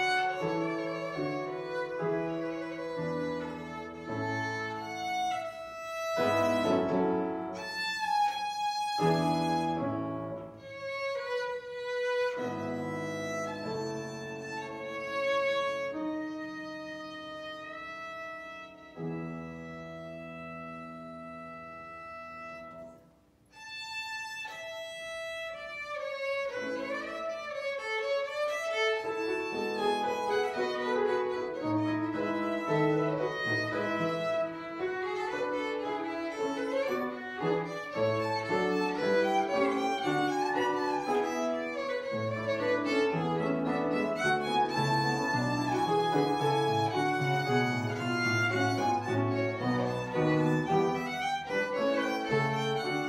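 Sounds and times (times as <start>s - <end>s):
low piano chords: 0.0s - 8.0s, 28.7s - 53.0s
violin playing slow notes: 0.0s - 53.0s.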